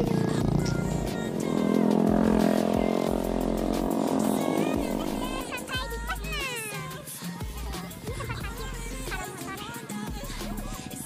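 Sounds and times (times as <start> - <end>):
background music: 0.0 - 11.0
motorcycle engine running: 0.0 - 11.0.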